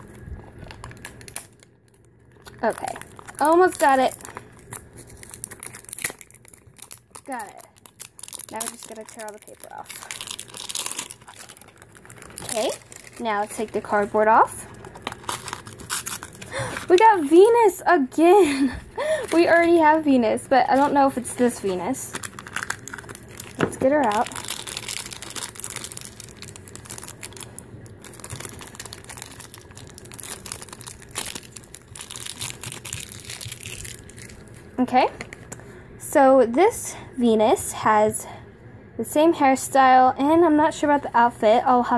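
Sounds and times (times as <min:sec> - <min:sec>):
paper wrapping tearing and crumpling: 0:00.0 - 0:17.6, 0:20.7 - 0:34.7
plastic bag crinkling: 0:00.0 - 0:17.8, 0:18.4 - 0:35.6.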